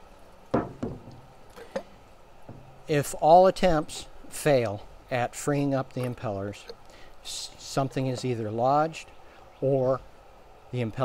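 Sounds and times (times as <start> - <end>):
knocks from gas meter: 0.5 - 1.2.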